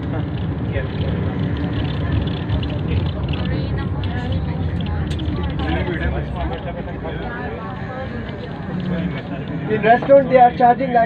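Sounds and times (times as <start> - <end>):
bus rumble from inside: 0.0 - 11.0
people talking indistinctly: 0.0 - 11.0.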